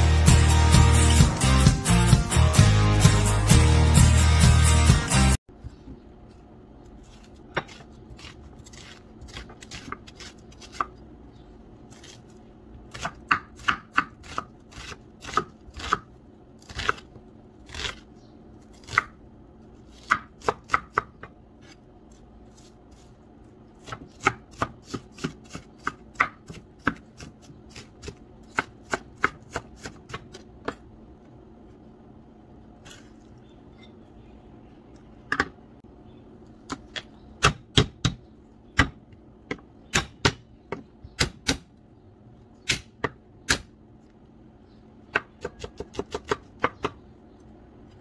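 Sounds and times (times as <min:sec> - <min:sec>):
knife chopping onion on wooden board: 0:07.1 - 0:11.0, 0:12.8 - 0:17.1, 0:18.7 - 0:19.2, 0:19.8 - 0:21.8, 0:23.7 - 0:30.9, 0:36.6 - 0:38.2, 0:38.8 - 0:41.7, 0:42.6 - 0:43.7, 0:45.1 - 0:47.0
knife chopping on wooden board: 0:12.9 - 0:16.1, 0:23.8 - 0:30.8.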